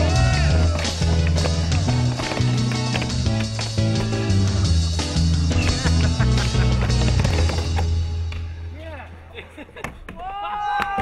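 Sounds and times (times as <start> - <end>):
low background music: 0.0 - 9.1.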